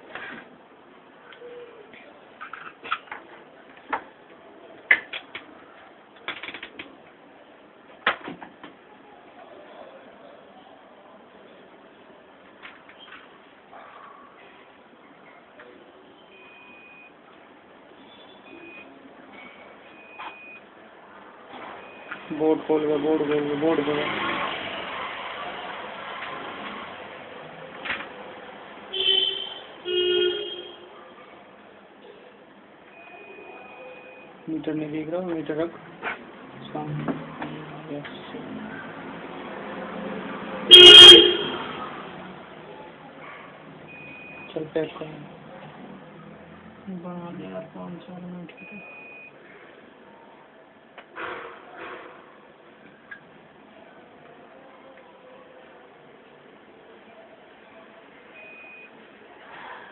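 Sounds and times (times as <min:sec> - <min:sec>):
vehicle horn honking: 0:28.9 - 0:30.9, 0:40.7 - 0:41.7.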